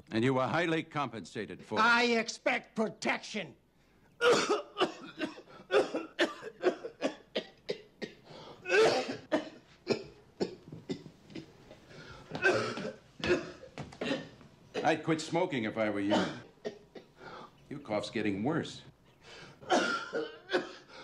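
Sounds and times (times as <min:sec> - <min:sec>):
man coughing harshly: 0:04.2 - 0:11.5, 0:12.3 - 0:15.0, 0:16.1 - 0:17.4, 0:19.6 - 0:21.0.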